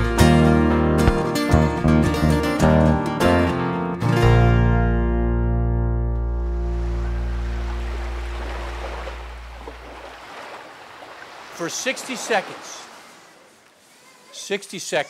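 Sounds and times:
acoustic guitars and keyboard: 0:00.0 - 0:09.6.

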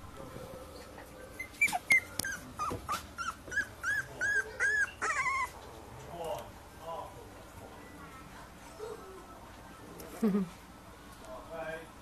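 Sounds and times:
puppy whimpering: 0:00.9 - 0:05.7.

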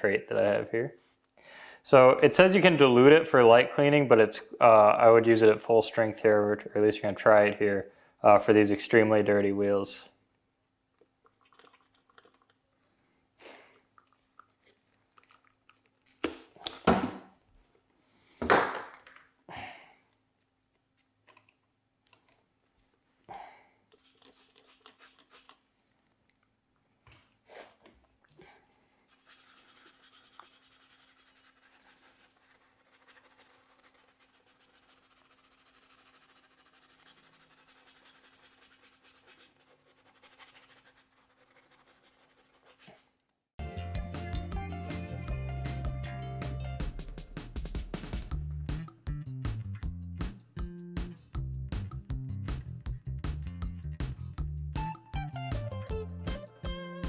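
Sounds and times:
spray bottle squirts: 0:23.9 - 0:25.6
brush scrubbing wheel: 0:29.1 - 0:43.1.

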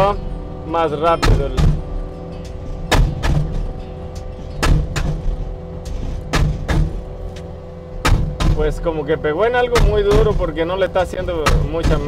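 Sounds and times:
loader engine running: 0:00.0 - 0:12.0
post driver striking steel post: 0:01.2 - 0:07.0, 0:08.0 - 0:08.6, 0:09.7 - 0:10.4.

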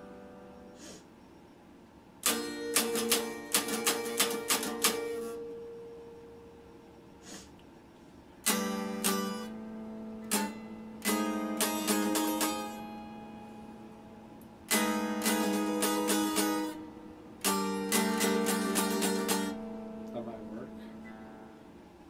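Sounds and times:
electric guitar notes picked: 0:00.0 - 0:00.8, 0:02.2 - 0:06.8, 0:08.4 - 0:21.9.

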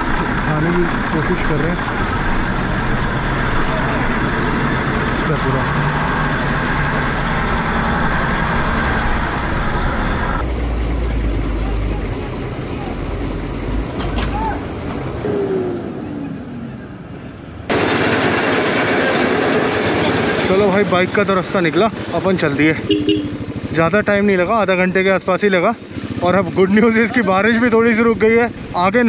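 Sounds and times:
road noise: 0:00.0 - 0:29.0
vehicle engines running: 0:00.0 - 0:29.0.

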